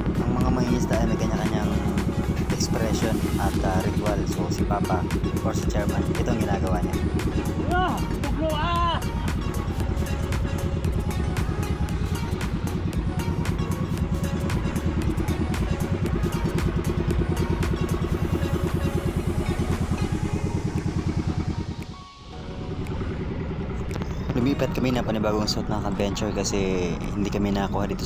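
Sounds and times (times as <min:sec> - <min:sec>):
boat engine running: 0:00.0 - 0:28.0.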